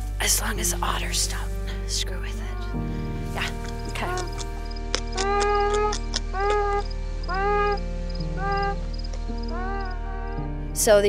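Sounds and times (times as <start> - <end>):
musical drone: 0.0 - 11.0
beaver whining calls: 3.4 - 10.5
sharp clicks: 4.0 - 6.8.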